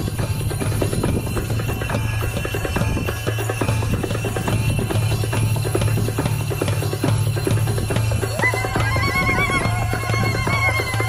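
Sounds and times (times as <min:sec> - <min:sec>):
hand drums beating: 0:00.0 - 0:11.0.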